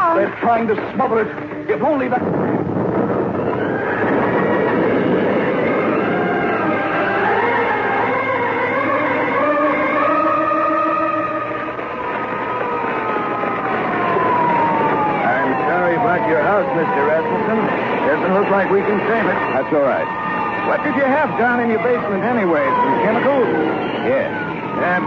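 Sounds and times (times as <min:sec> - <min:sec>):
rushing fire noise: 0:00.0 - 0:25.0
sirens wailing: 0:00.0 - 0:25.0.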